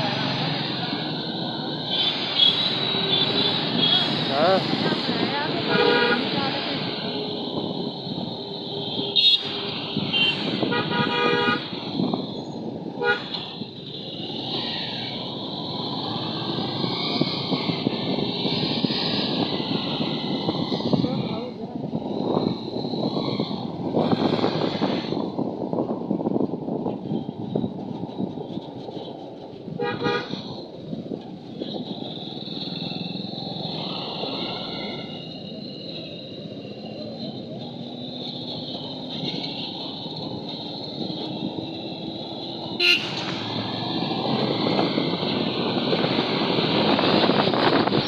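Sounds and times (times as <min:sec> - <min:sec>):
motorbike engine and road rumble: 0:00.0 - 0:48.0
wind on microphone: 0:00.6 - 0:48.0
vehicle horns beeping: 0:05.6 - 0:06.4, 0:09.0 - 0:11.7, 0:29.8 - 0:30.4, 0:42.7 - 0:43.3.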